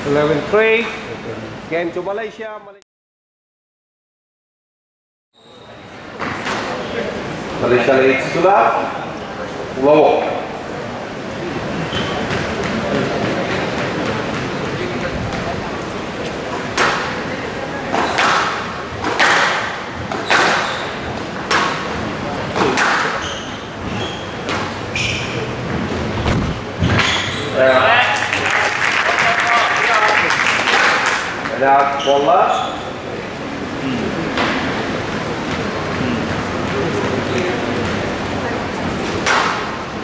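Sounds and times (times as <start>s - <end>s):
squash ball hit by rackets: 17.9s - 20.8s, 21.4s - 23.2s, 39.2s - 39.8s
voices: 26.8s - 39.6s.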